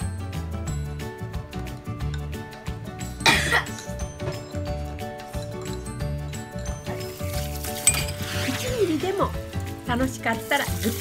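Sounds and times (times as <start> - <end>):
background music with steady beat: 0.0 - 11.0
person coughing: 3.2 - 3.8.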